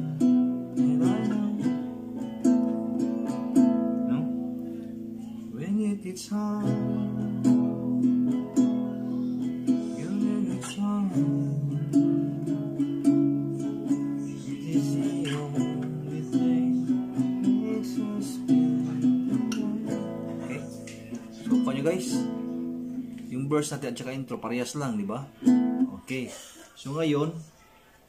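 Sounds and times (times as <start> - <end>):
fingerpicked classical guitar: 0.0 - 26.2.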